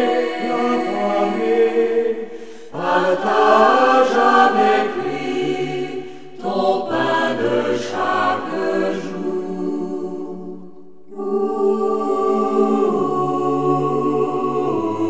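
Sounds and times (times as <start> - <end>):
choir singing: 0.0 - 15.0.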